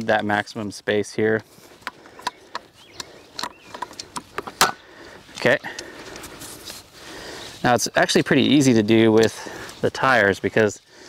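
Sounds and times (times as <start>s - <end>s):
kayak cart clicks and clunks: 1.8s - 6.2s.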